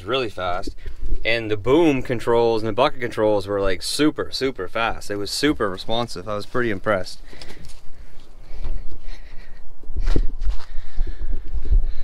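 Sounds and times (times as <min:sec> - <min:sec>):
footsteps on gravel: 0:00.0 - 0:03.7, 0:04.6 - 0:10.8.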